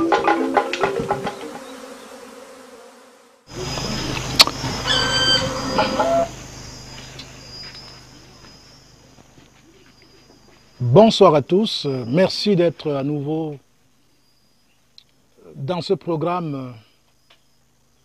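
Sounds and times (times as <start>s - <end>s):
hand drum and wood block music: 0.0s - 1.6s
steady low hum: 3.5s - 17.1s.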